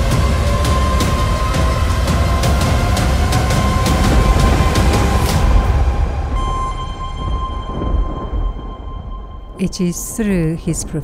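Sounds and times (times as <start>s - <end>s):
thin sustained tones: 0.0s - 10.9s
deep volcanic rumble: 0.0s - 11.0s.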